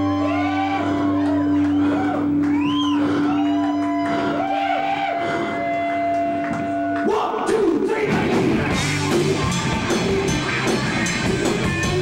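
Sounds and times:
rock band with drums: 0:00.0 - 0:05.0, 0:05.6 - 0:12.0
harmonica wailing: 0:00.0 - 0:06.9.

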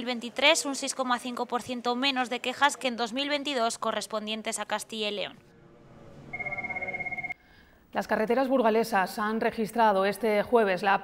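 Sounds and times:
warbling electronic ringing tone: 0:06.3 - 0:07.4.

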